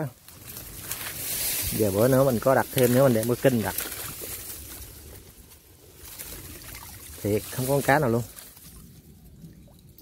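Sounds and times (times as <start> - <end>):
water trickling and sloshing: 2.8 - 10.0.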